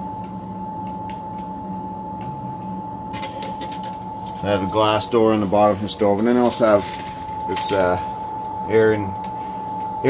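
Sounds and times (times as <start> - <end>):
exhaust fan humming and whining: 0.0 - 10.0.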